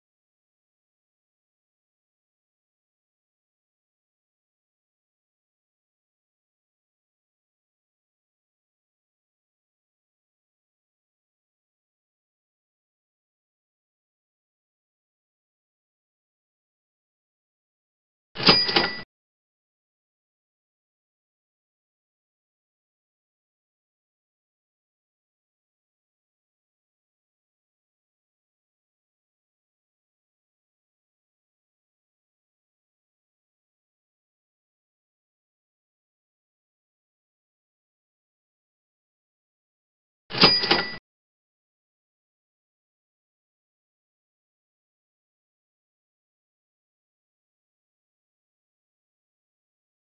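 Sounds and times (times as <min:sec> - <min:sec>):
high ringing tone: 0:18.4 - 0:19.0, 0:40.3 - 0:41.0.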